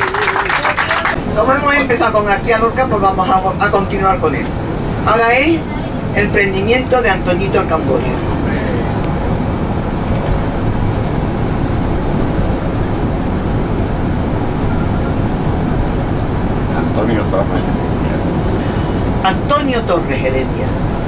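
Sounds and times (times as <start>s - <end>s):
bus engine and road noise: 0.0s - 21.0s.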